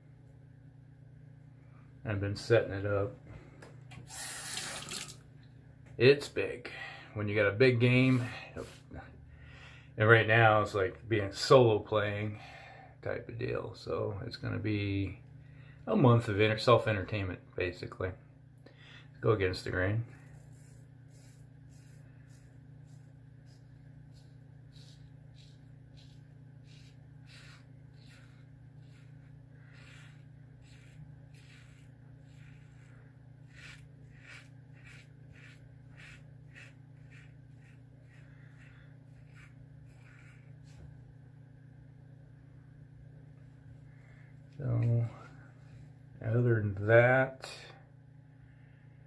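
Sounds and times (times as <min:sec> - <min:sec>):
steady low hum: 0:00.0 - 0:49.0
razor scraping stubble: 0:19.6 - 0:41.0.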